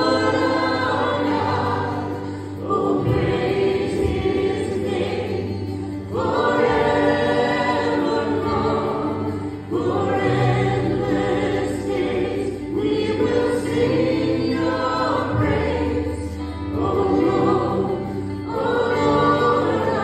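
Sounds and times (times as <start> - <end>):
acoustic guitar: 0.0 - 20.0
congregation singing: 0.0 - 20.0
worship leader singing: 0.0 - 20.0.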